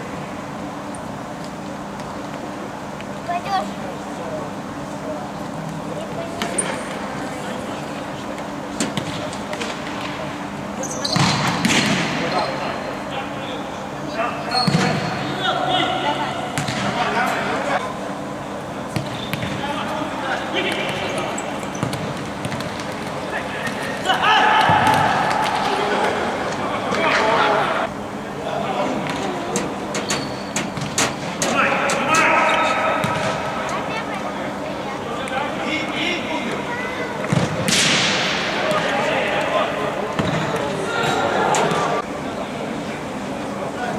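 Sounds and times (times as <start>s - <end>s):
players calling out: 12.1s - 30.4s.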